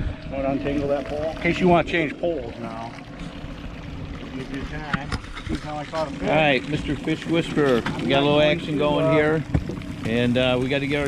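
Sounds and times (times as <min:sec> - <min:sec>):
water noise: 0:00.0 - 0:11.0
wind: 0:00.0 - 0:11.0.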